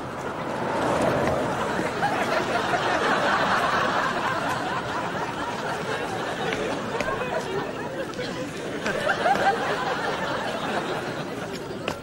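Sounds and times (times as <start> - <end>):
audience laughing and chattering: 0.0 - 12.0.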